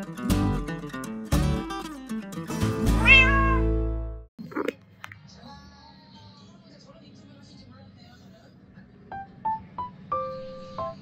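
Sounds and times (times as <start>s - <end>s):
cat meow: 3.0s - 3.7s
light background music: 9.0s - 11.0s.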